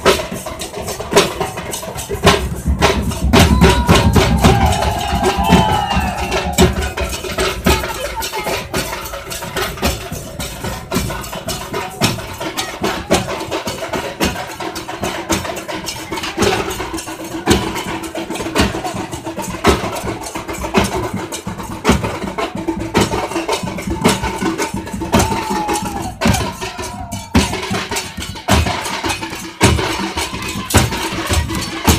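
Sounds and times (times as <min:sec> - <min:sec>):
drums beaten fast: 0:00.0 - 0:31.9.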